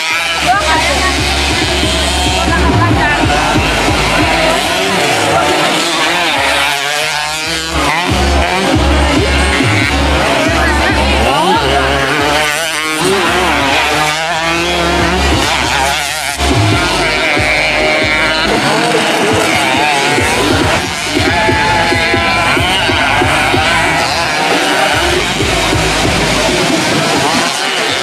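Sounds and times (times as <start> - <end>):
motorcycle engines revving: 0.0 - 28.0
thumping background music: 0.4 - 5.4, 7.5 - 12.1, 12.7 - 24.4, 25.0 - 27.5.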